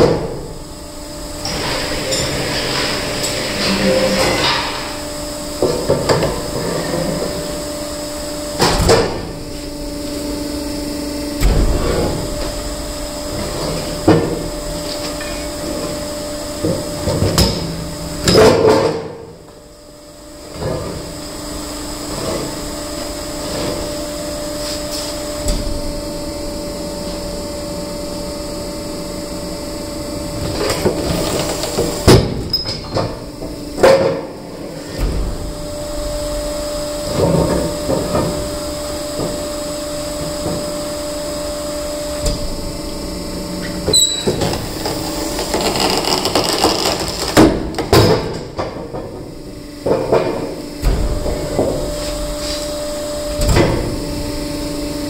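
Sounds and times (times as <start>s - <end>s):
hydraulic stone splitter humming: 25.4s - 51.9s.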